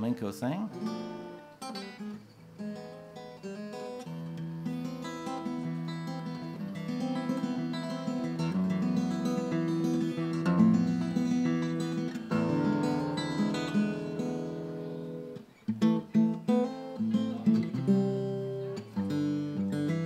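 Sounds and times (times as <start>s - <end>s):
flamenco acoustic guitar: 0.5s - 20.0s.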